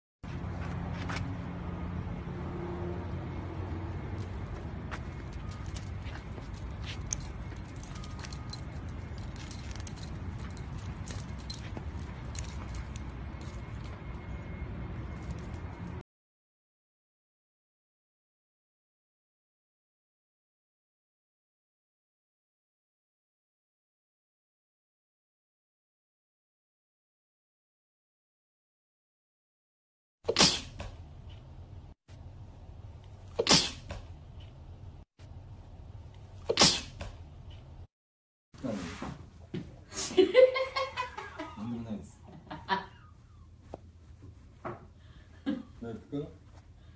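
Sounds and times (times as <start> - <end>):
leash hardware jingling: 3.3 - 16.0
dog sneezing: 30.3 - 30.8, 33.3 - 34.0, 36.4 - 37.0.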